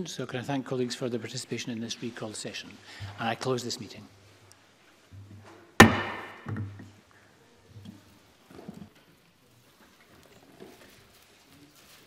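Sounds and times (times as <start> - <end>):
sharp knock on hard surface: 5.8 - 6.7.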